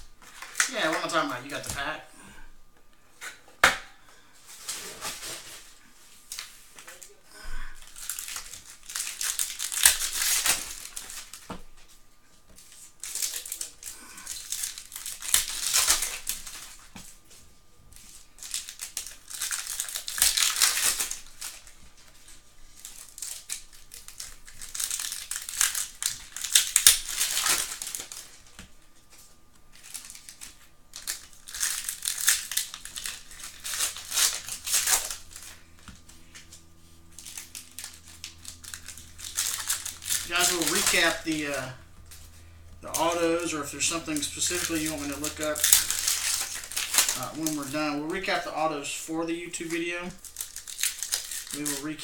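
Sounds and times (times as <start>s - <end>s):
foil packs crinkling: 0.2s - 2.4s, 4.1s - 52.0s.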